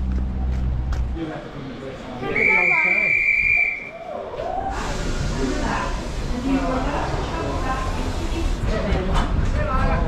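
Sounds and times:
high steady whistle: 2.2 - 4.0.

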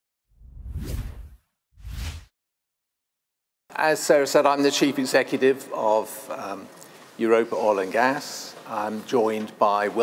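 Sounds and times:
whoosh sound effects: 0.4 - 2.3.

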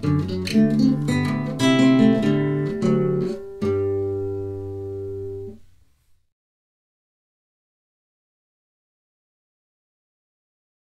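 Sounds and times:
nylon-string guitar chord ringing: 0.0 - 5.6.

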